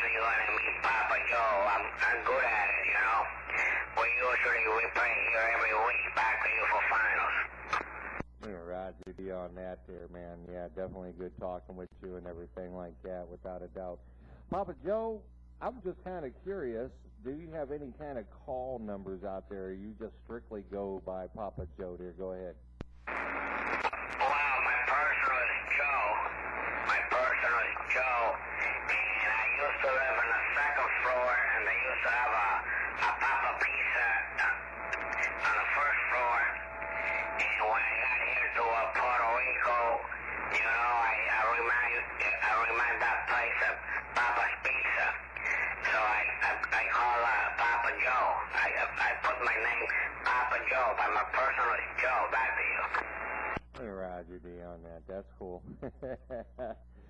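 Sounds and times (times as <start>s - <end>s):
man speaking over radio speaker: 0.0s - 55.6s
steady low hum: 0.0s - 57.0s.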